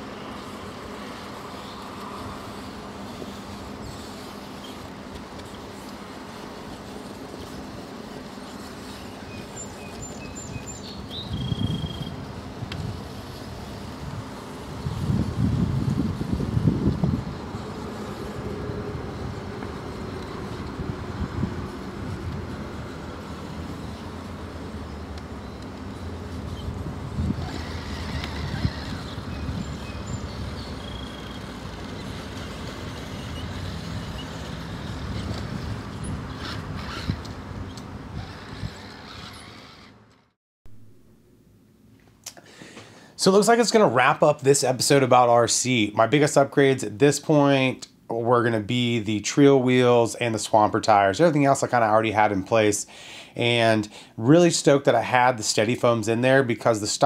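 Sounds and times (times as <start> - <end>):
toy car electric motor whining: 26.4 - 40.3.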